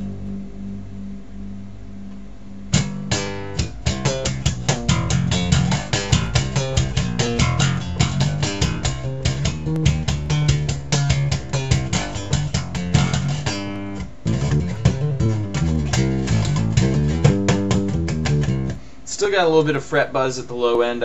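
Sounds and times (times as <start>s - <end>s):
electric bass plucked fingerstyle: 0.0s - 19.0s.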